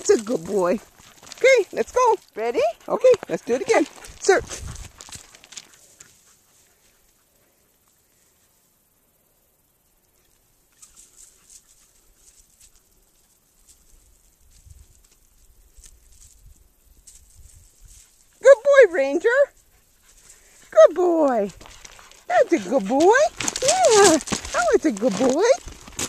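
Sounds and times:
rustles of dry grass: 0.0s - 8.6s, 10.2s - 18.5s, 19.5s - 26.0s.

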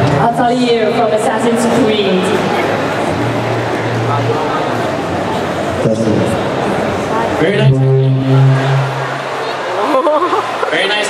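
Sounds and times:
low droning note over sound system: 0.0s - 9.8s.

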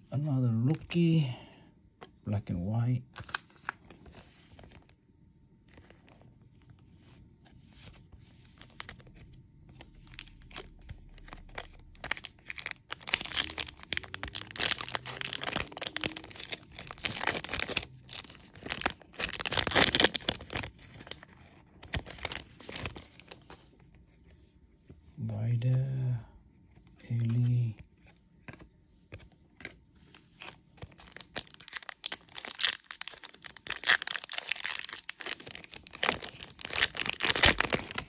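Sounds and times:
faint handling of cards: 0.6s - 38.0s
card pack wrapper tearing: 9.9s - 23.5s, 30.4s - 38.0s.

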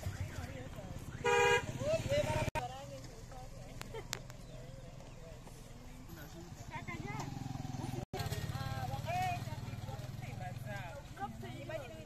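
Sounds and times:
women talking and calling out: 0.0s - 12.0s.

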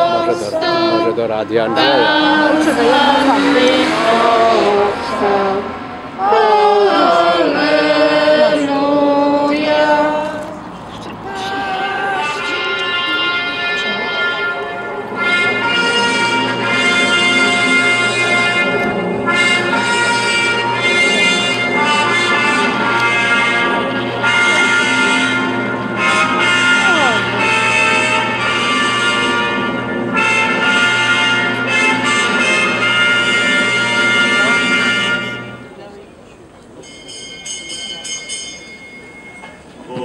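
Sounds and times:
slow brass hymn-like melody: 0.0s - 35.8s.

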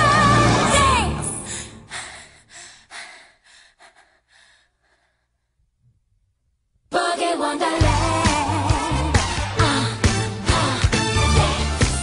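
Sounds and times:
music: 0.0s - 2.1s, 7.5s - 12.0s.

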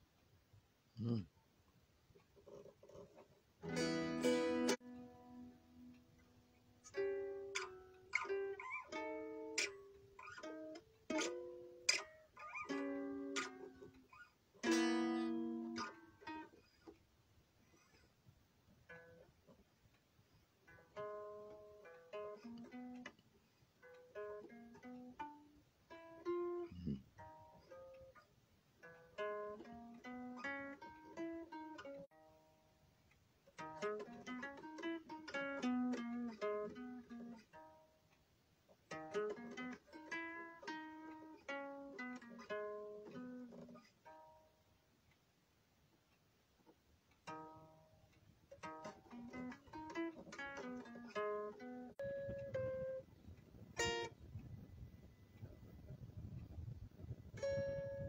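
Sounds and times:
guitar single-note picking: 3.6s - 14.0s, 14.6s - 16.6s, 48.6s - 55.1s, 56.4s - 58.0s
guitar strummed chords: 3.6s - 14.0s, 14.6s - 16.6s, 33.6s - 37.8s, 38.9s - 44.4s, 48.5s - 54.2s, 57.3s - 58.0s.

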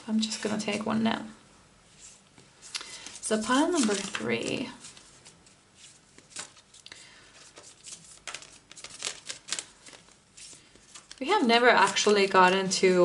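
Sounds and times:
cards shuffled on a table: 7.4s - 11.2s.

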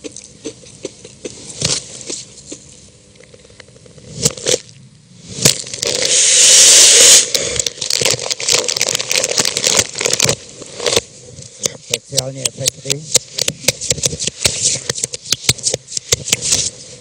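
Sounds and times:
paper crumpling: 7.6s - 11.0s.

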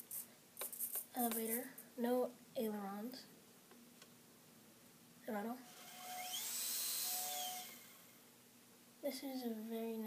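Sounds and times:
small electric motor and propeller whining: 5.6s - 8.2s.

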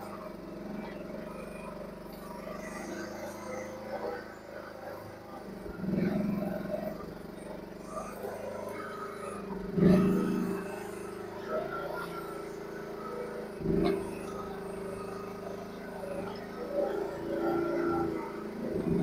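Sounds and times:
excavator engine running: 0.0s - 19.0s.

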